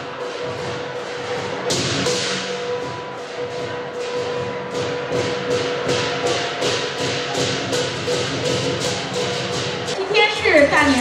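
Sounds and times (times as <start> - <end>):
cymbals clashing: 0.0 - 10.0
drum: 0.0 - 11.0.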